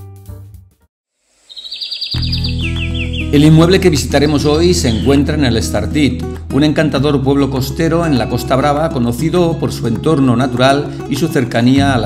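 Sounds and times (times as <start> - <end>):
small bird chirping: 1.4 - 3.5
piano music: 2.2 - 12.0.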